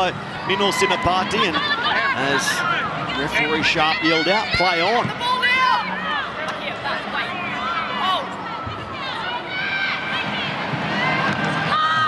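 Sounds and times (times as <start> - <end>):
people shouting: 0.0 - 6.4, 7.2 - 12.0
stadium crowd murmur: 0.0 - 12.0.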